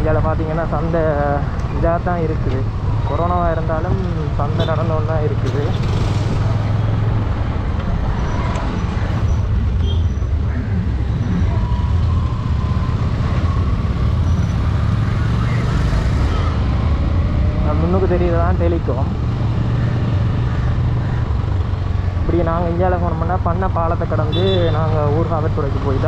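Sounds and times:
road and traffic noise: 0:00.0 - 0:26.0.

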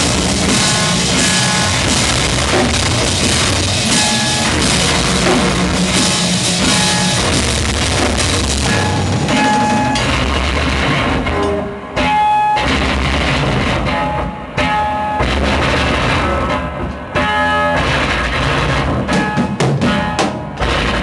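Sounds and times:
drums and cymbals: 0:00.0 - 0:21.0
electric guitar: 0:00.0 - 0:21.0.

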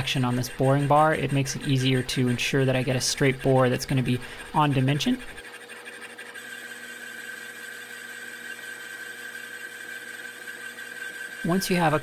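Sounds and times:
metal lathe whine: 0:00.0 - 0:12.0.

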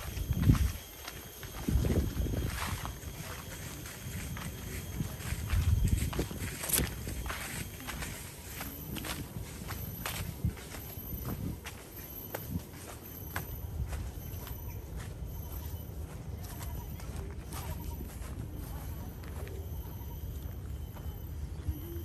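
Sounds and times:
scuffs and clicks underfoot: 0:00.0 - 0:21.8
footsteps on a trail: 0:00.0 - 0:22.0.

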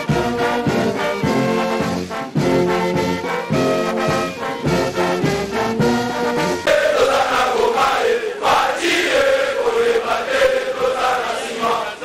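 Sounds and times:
men chanting in unison: 0:06.7 - 0:12.0.

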